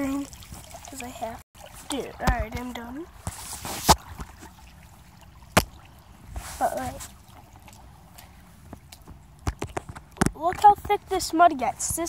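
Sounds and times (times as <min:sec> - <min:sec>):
water sloshing around boots: 0:00.0 - 0:12.0.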